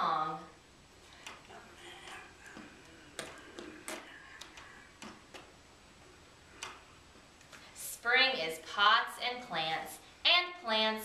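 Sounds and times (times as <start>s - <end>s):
hands slapping lightly: 1.3s - 5.5s.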